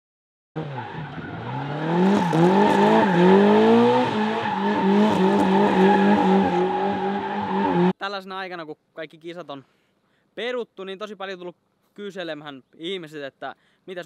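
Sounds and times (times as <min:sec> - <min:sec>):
car engine revving: 0:00.6 - 0:07.9.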